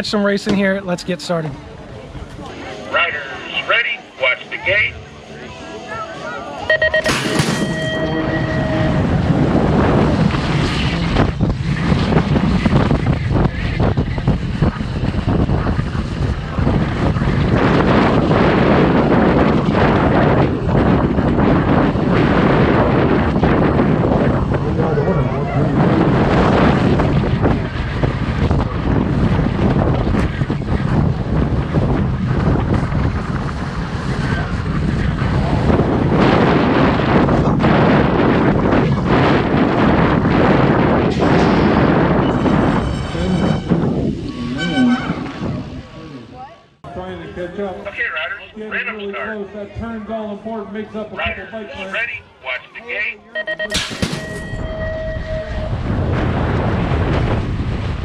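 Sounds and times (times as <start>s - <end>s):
wind rushing over microphone: 6.8s - 52.2s, 53.9s - 58.0s.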